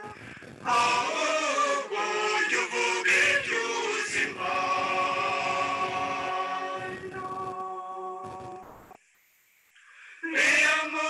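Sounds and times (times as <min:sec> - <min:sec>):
choir singing long notes: 0:00.6 - 0:08.4, 0:10.2 - 0:11.0.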